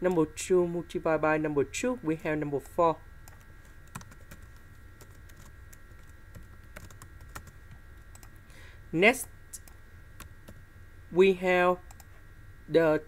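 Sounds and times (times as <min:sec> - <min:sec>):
low steady hum: 0:00.0 - 0:13.0
keyboard typing: 0:03.3 - 0:08.4.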